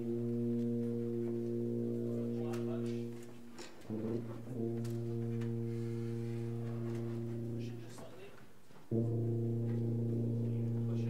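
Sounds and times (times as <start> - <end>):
low brass instruments holding note: 0.0 - 11.0.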